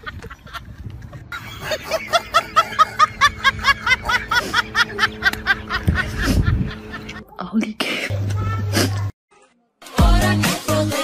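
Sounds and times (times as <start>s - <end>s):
high-pitched snickering laughter: 1.3s - 7.3s.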